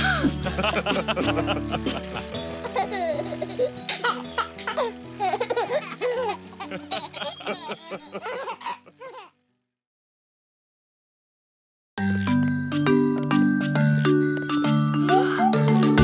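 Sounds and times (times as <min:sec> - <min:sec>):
children giggling and laughing: 0:00.0 - 0:09.0
cartoon background music: 0:00.0 - 0:09.2, 0:12.0 - 0:16.0.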